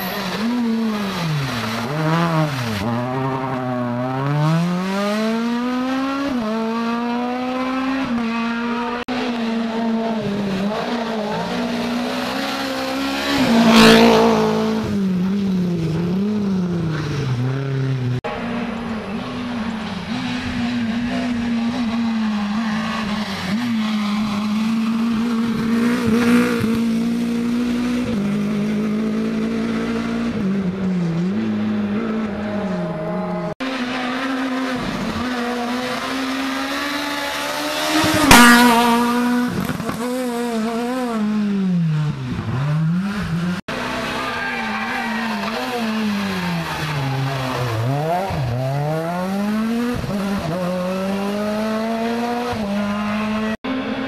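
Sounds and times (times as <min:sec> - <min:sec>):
car passing close by: 0:00.0 - 0:15.0
rally car engines revving: 0:00.0 - 0:54.0.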